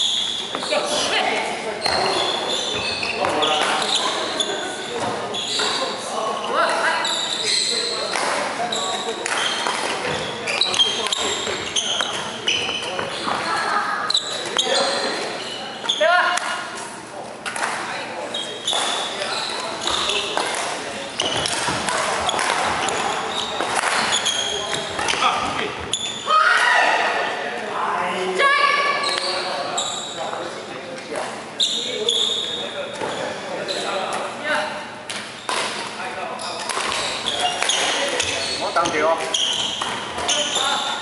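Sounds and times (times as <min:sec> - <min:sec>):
sneakers squeaking on gym floor: 0:00.0 - 0:16.8, 0:17.5 - 0:26.3, 0:28.8 - 0:30.5, 0:31.6 - 0:34.3, 0:35.1 - 0:41.0
echoing voices: 0:00.0 - 0:41.0
rackets hitting shuttlecock: 0:08.0 - 0:13.1, 0:18.7 - 0:25.3, 0:35.0 - 0:36.0, 0:36.6 - 0:40.7.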